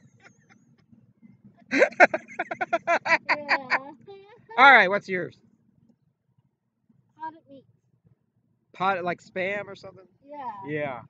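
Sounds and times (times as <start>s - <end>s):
people laughing: 1.7s - 3.9s.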